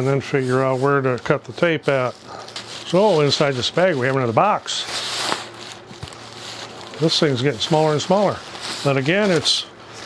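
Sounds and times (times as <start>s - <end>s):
plastic bag rustling: 0.6s - 10.0s.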